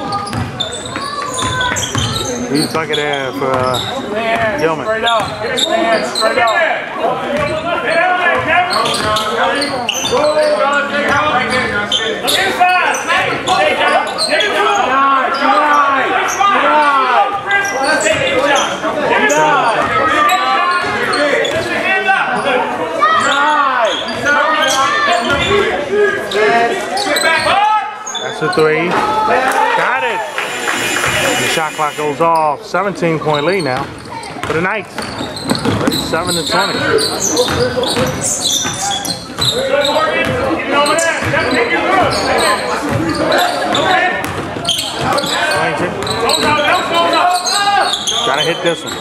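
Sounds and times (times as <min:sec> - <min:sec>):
basketball bouncing on hardwood floor: 0:00.3 - 0:00.6
voices calling out: 0:26.2 - 0:34.4.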